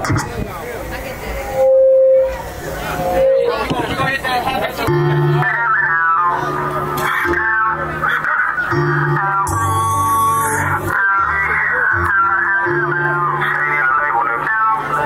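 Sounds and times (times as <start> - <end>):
crowd voices and calls: 0.0 - 15.0
loud held note: 1.4 - 4.0, 8.7 - 11.0
music with bass line and guitar: 4.7 - 15.0.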